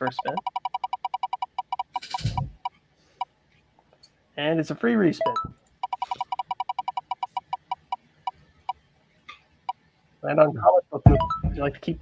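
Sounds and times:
prize wheel ticking: 0:00.0 - 0:02.7, 0:05.2 - 0:08.0.

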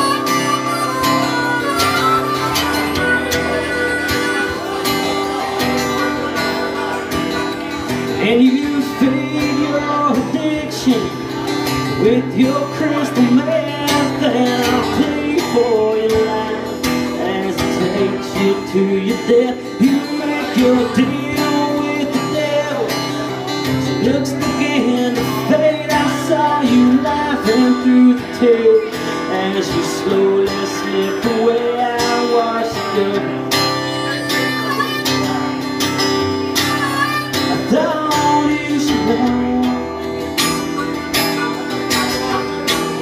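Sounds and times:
harmonica: 0:00.0 - 0:07.1
acoustic guitar strumming: 0:00.0 - 0:43.0.

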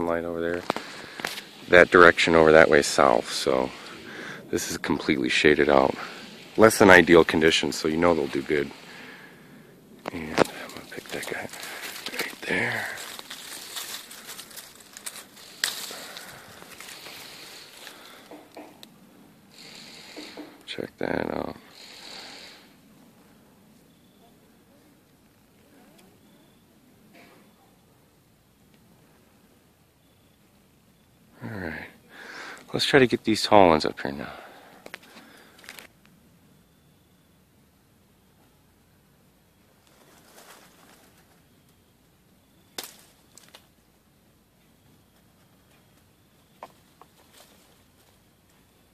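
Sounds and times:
twigs and leaves rustling: 0:00.0 - 0:23.9, 0:32.1 - 0:36.2, 0:39.6 - 0:48.9
branch snapping: 0:10.0 - 0:18.9, 0:42.8 - 0:43.7.

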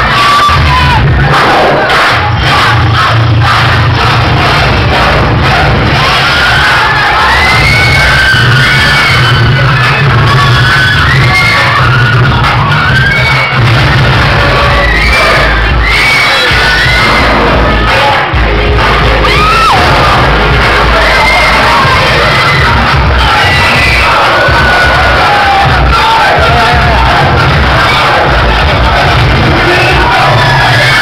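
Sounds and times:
crowd cheering and shouting: 0:00.0 - 0:31.0
loud dance music: 0:00.0 - 0:31.0.

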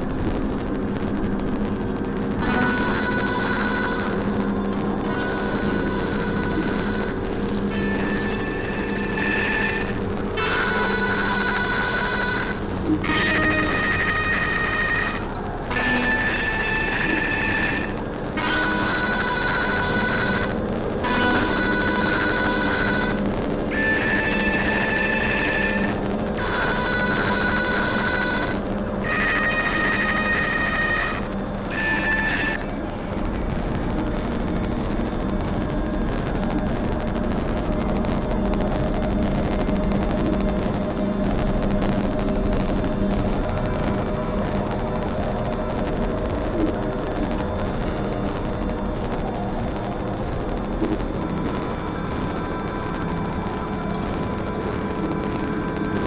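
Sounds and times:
continuous synthesizer drone: 0:00.0 - 0:56.0
sustained electronic tones: 0:00.0 - 0:56.0.

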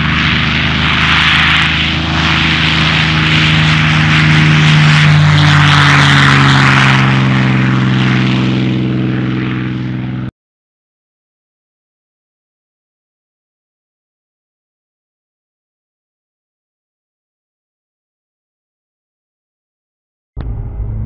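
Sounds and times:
car engine running: 0:20.4 - 0:21.0.

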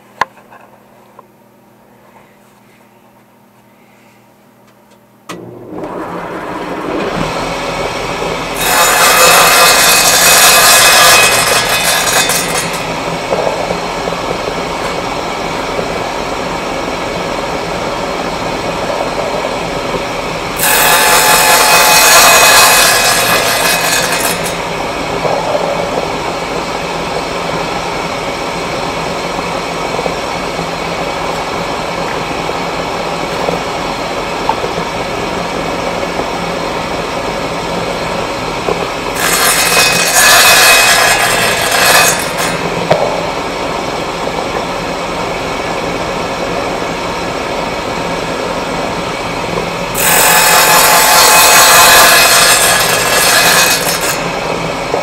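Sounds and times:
saw blade cutting plywood: 0:05.3 - 0:13.8, 0:20.6 - 0:26.1, 0:39.1 - 0:43.0, 0:49.9 - 0:55.0
table saw motor running: 0:05.3 - 0:35.9, 0:37.2 - 0:44.3, 0:49.7 - 0:55.0.

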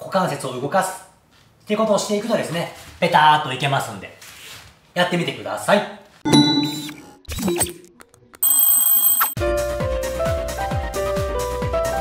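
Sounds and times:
high notification bell: 0:08.4 - 0:09.4.

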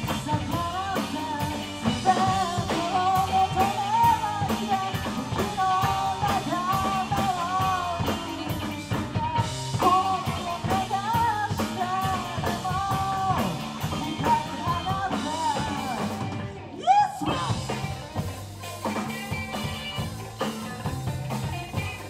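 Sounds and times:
lead vocal singing: 0:00.0 - 0:18.2
rock band playing live: 0:00.0 - 0:22.0.

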